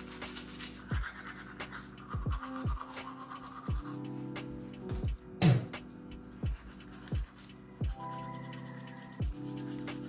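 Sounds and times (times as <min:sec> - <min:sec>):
toothbrush scrubbing teeth: 0:00.0 - 0:04.5, 0:06.4 - 0:10.0.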